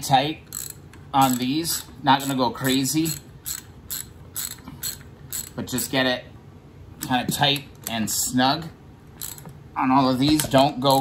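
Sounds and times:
socket ratchet clicking: 0:00.4 - 0:05.6, 0:09.2 - 0:09.6.

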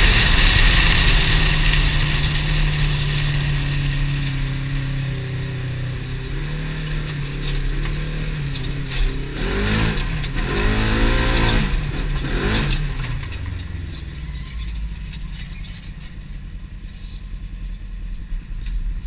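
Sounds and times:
engine running and revving: 0:00.0 - 0:19.0.

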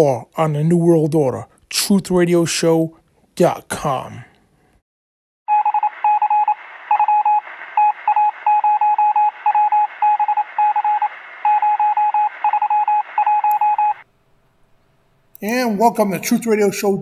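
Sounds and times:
morse code beeps: 0:05.5 - 0:14.0
radio static hiss: 0:05.8 - 0:14.0.

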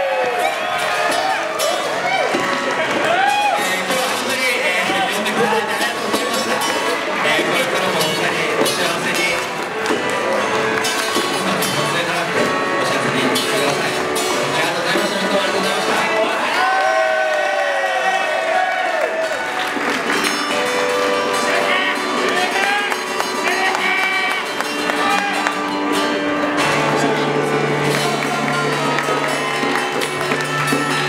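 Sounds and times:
crowd voices and cheering: 0:00.0 - 0:31.0
small live band playing: 0:00.0 - 0:31.0.

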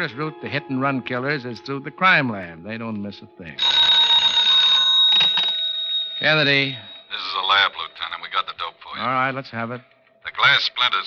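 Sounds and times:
telephone bell ringing: 0:03.6 - 0:08.3.

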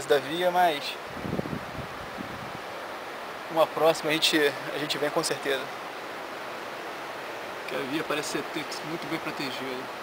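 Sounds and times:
steady hiss: 0:00.0 - 0:10.0
wind buffeting microphone: 0:01.1 - 0:02.7.

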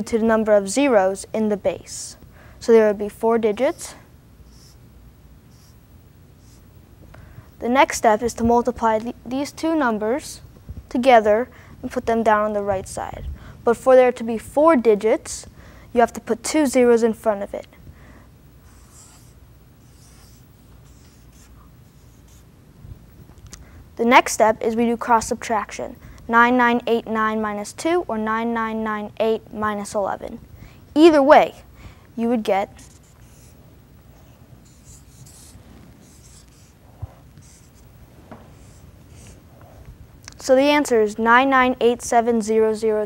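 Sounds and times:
marker writing on paper: 0:04.5 - 0:04.8, 0:05.5 - 0:05.8, 0:06.4 - 0:06.6, 0:18.6 - 0:22.4, 0:32.8 - 0:33.6, 0:34.2 - 0:39.8.

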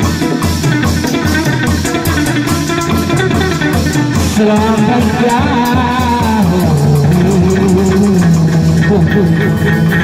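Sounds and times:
plucked-string melody: 0:00.0 - 0:10.0
steady percussion beat: 0:00.0 - 0:10.0.

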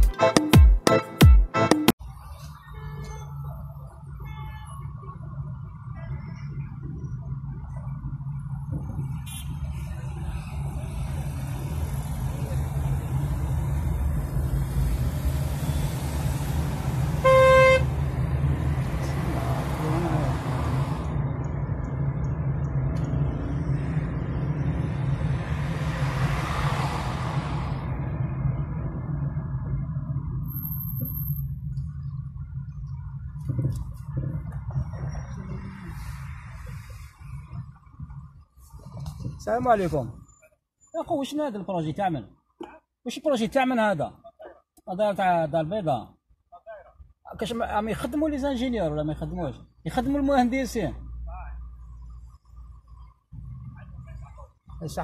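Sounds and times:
vehicles passing: 0:00.0 - 0:55.0
road noise inside moving car: 0:01.9 - 0:55.0
car horn tooting: 0:04.2 - 0:04.9, 0:09.2 - 0:09.8, 0:17.2 - 0:18.0.

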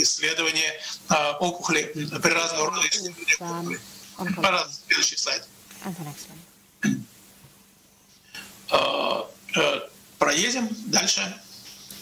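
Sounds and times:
man making wordless vocal sounds: 0:02.6 - 0:04.6.

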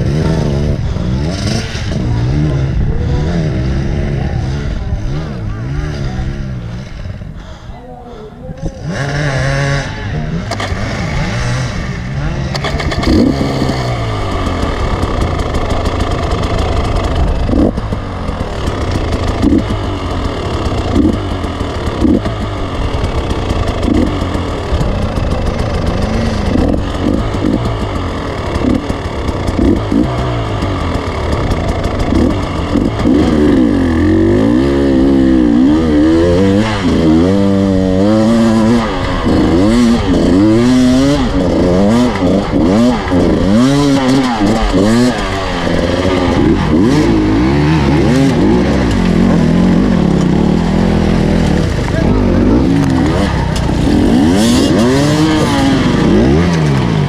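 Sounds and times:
motorcycle engine revving: 0:00.0 - 0:57.0.

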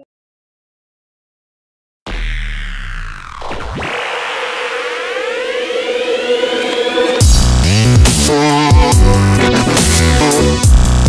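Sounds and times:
synthesized riser sweeping upward: 0:02.1 - 0:10.2
held synth tone: 0:02.6 - 0:07.4.

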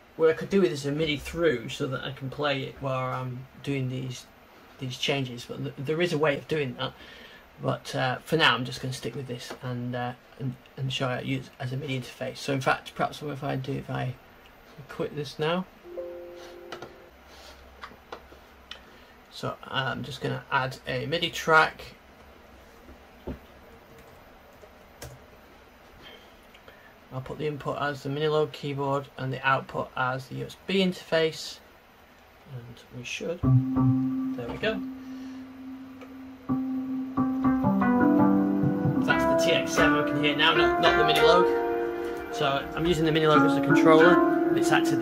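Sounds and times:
synthesizer notes: 0:15.9 - 0:17.1, 0:33.4 - 0:45.0
two-pitch electronic tone: 0:15.9 - 0:17.1, 0:33.4 - 0:45.0.

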